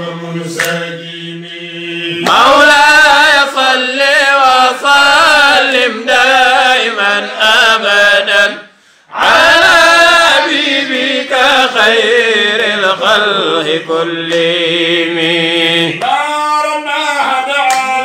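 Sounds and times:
men chanting devotional verse: 0:00.0 - 0:18.0.

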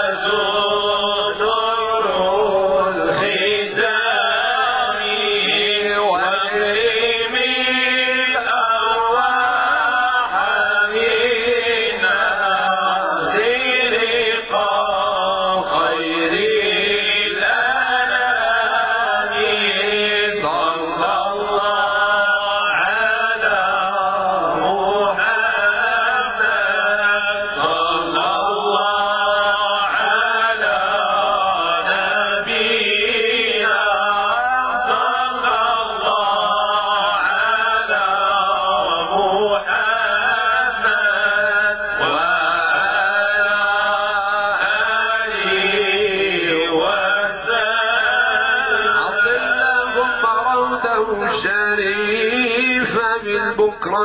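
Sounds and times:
men chanting: 0:00.0 - 0:54.0.

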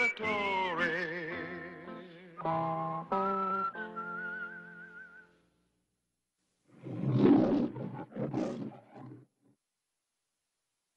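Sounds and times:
whistled melody: 0:01.8 - 0:05.4.

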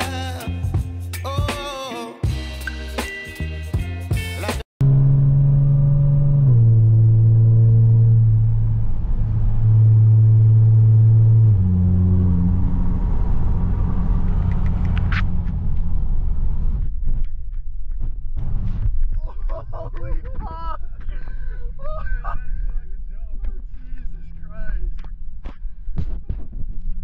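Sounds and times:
car engine drone from cabin: 0:04.8 - 0:17.0
road and tyre rumble: 0:04.8 - 0:19.2.

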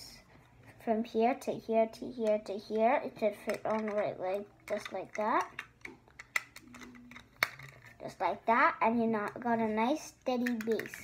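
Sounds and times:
plastic bricks clicking: 0:03.4 - 0:08.0, 0:10.4 - 0:11.0
plastic bricks snapping: 0:04.7 - 0:07.9.

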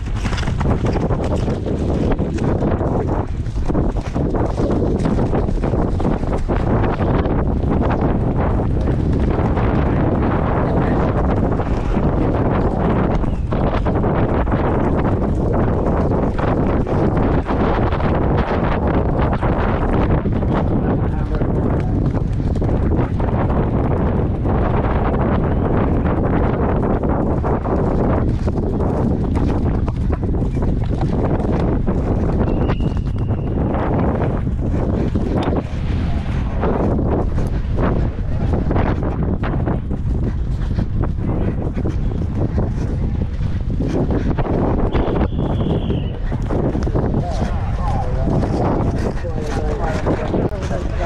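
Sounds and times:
horse hoofbeats on turf: 0:00.0 - 0:51.0
wind buffeting microphone: 0:00.0 - 0:51.0.

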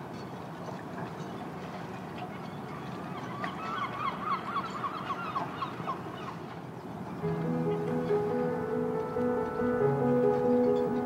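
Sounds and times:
birds honking: 0:07.2 - 0:11.0.

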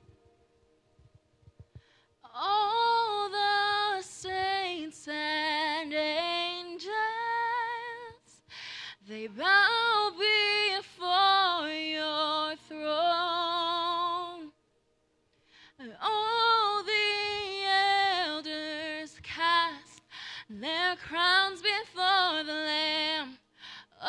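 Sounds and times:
woman breathing: 0:01.6 - 0:02.2, 0:08.3 - 0:09.1, 0:15.3 - 0:15.8, 0:20.0 - 0:20.6, 0:23.5 - 0:24.0
woman singing unaccompanied: 0:02.3 - 0:08.4, 0:09.0 - 0:14.6, 0:15.8 - 0:23.4.

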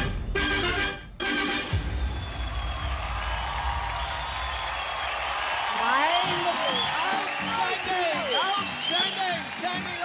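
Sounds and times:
audience cheering: 0:01.7 - 0:10.0
studio audience applauding: 0:01.7 - 0:10.0.

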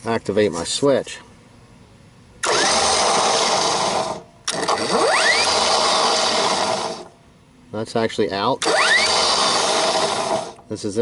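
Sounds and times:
electric winch motor whining: 0:02.4 - 0:07.1, 0:08.6 - 0:10.6.

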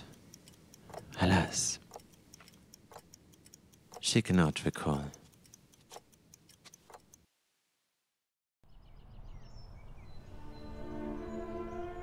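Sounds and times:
faint clock ticking: 0:00.0 - 0:07.3.

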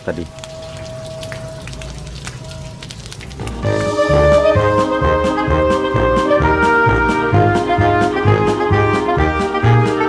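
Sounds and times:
hose water splashing on glass: 0:00.0 - 0:07.7
music with brass instruments: 0:03.5 - 0:10.0.

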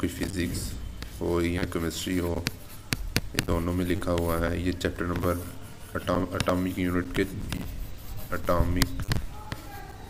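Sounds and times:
man speaking: 0:00.0 - 0:02.6, 0:03.4 - 0:07.6, 0:08.2 - 0:09.0
stylus tapping on tablet: 0:00.2 - 0:09.8.

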